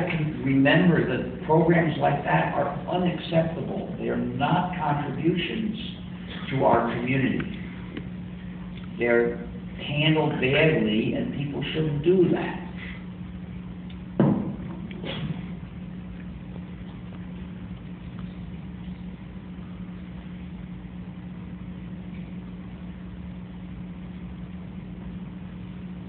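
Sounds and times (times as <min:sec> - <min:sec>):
low electrical hum: 0:00.0 - 0:26.0
faint knock: 0:14.2 - 0:15.2
loud thump: 0:14.2 - 0:15.5.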